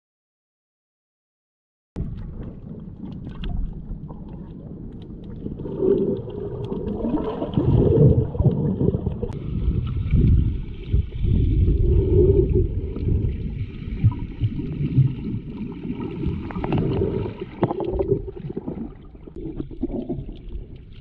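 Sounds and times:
muffled underwater sloshing: 2.0 - 21.0
water gurgles: 2.0 - 21.0.

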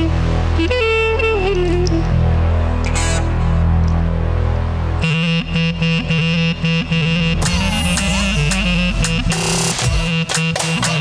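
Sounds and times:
clarinet melody with pitch bends: 0.0 - 11.0
synthesizer keyboard backing: 0.0 - 11.0.

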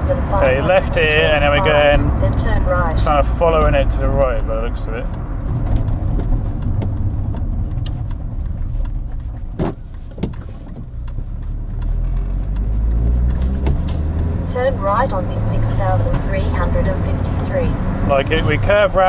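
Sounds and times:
car cabin road noise: 0.0 - 19.0
faint clicks: 3.5 - 14.3
sharp knocks: 9.4 - 11.0.

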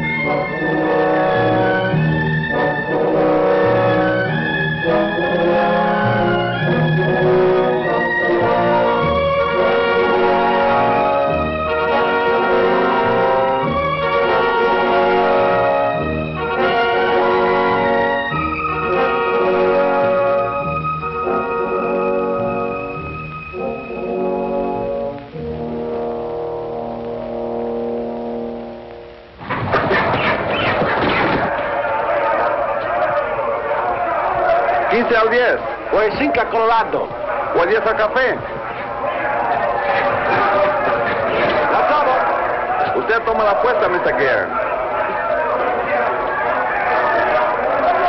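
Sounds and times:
orchestral music led by brass: 0.0 - 28.9
loud dense noise: 0.0 - 48.0.

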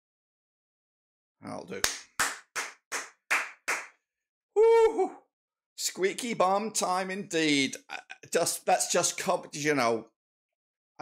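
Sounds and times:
hand claps: 1.8 - 4.0.

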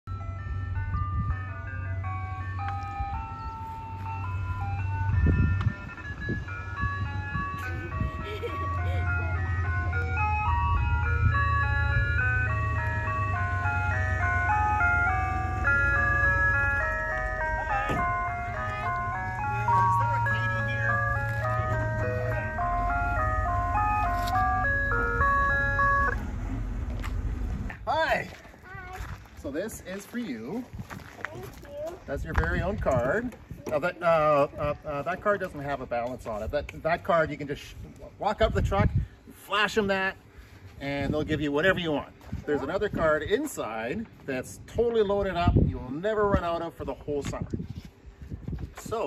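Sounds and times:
ice cream truck jingle: 0.0 - 28.1
low rumble: 17.4 - 27.9.

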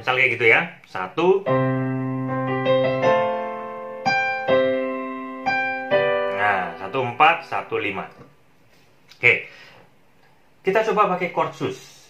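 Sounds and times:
piano chords ringing: 1.4 - 8.4.

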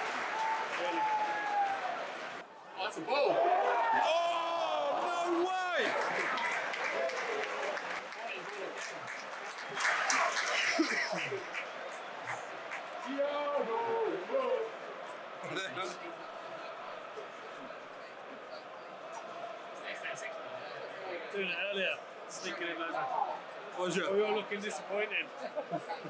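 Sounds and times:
stadium crowd noise: 0.0 - 26.0
men talking: 2.8 - 26.0.

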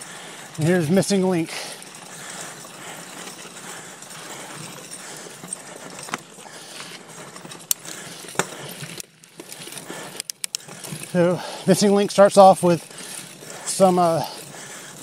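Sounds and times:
bike clicks and rattles: 0.0 - 15.0
bike tyres rolling on dirt: 0.0 - 15.0.

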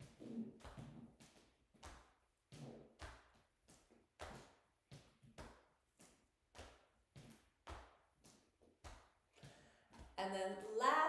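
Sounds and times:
arms swinging swish: 0.0 - 9.2
fists tapping on chest: 0.0 - 10.2.

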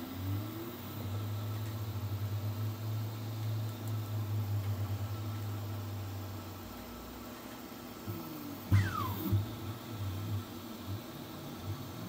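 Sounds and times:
print head motor whine: 0.0 - 12.0
stepper motors humming: 8.0 - 12.0.

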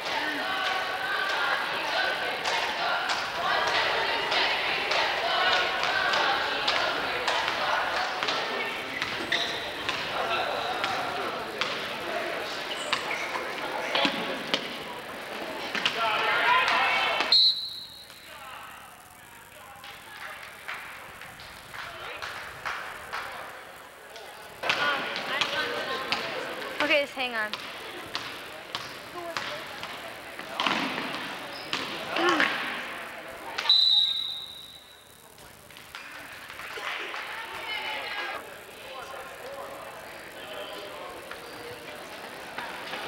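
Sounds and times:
crowd chatter: 0.0 - 43.0.

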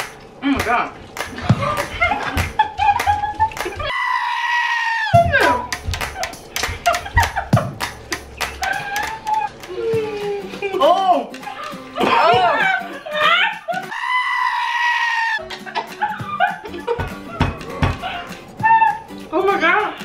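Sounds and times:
goat screaming: 3.8 - 5.7, 8.6 - 9.6, 11.5 - 16.6, 18.0 - 19.2.

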